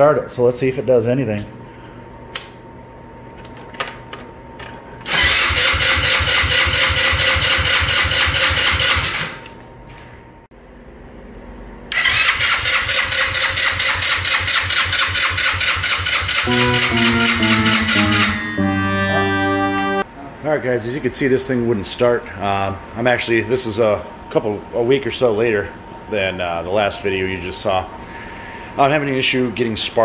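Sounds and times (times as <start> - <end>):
engine cranking by electric starter: 5.0 - 9.4, 11.9 - 16.5
guitar music: 16.4 - 20.0.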